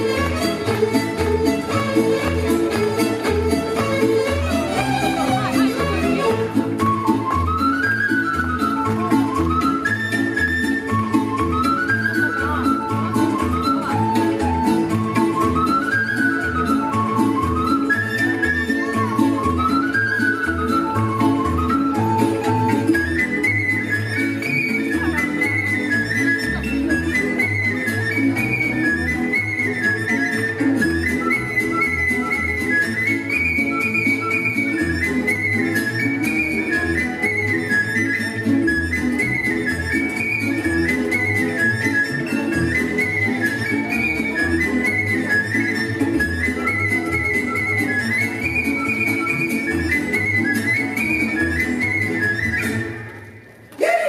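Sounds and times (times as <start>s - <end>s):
folk dance music with whistle melody: 0.0s - 54.0s.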